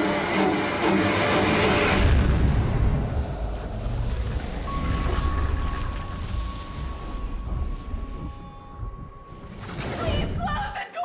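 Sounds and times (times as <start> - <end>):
deep rumbling boom: 1.8 - 10.4
thin high tone: 4.7 - 10.4.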